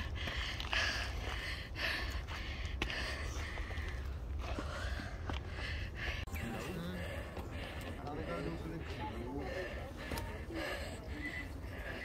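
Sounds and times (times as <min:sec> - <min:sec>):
hard breathing: 0:00.0 - 0:12.0.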